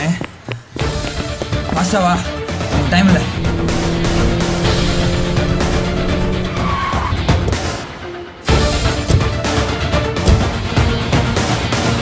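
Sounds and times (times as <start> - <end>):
background music: 0.0 - 12.0
tyre squeal: 6.2 - 7.4
car skidding to a stop: 6.2 - 7.6.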